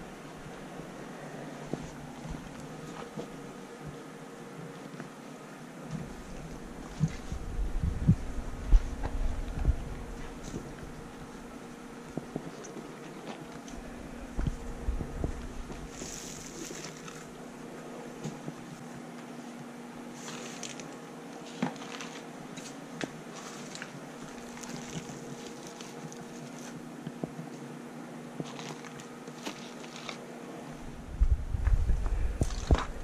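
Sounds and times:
faint steady hum: 0.0 - 33.0
soft bumps and low thuds: 6.0 - 11.1, 13.9 - 16.0, 30.9 - 33.0.

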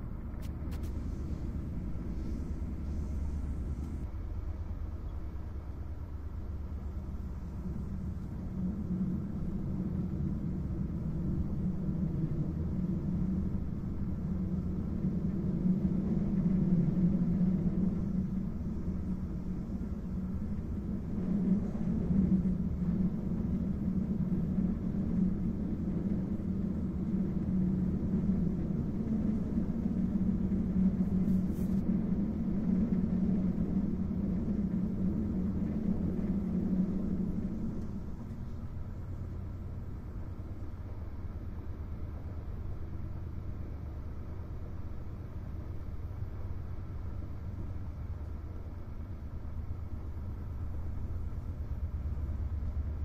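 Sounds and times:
train wheels rolling on rails: 0.0 - 53.0.

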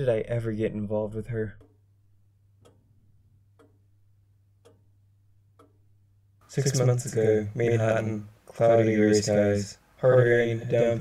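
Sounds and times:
faint clock-like ticking: 0.0 - 11.0
low steady hum: 0.0 - 11.0.

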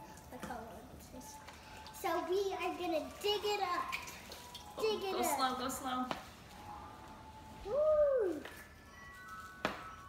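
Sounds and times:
drawn-out woo exclamation: 7.6 - 8.5.

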